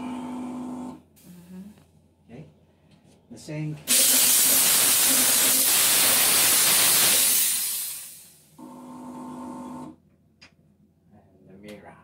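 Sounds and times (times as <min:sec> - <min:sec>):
electric buzz: 0:03.9 - 0:08.4
steam cleaner hissing: 0:03.9 - 0:08.5.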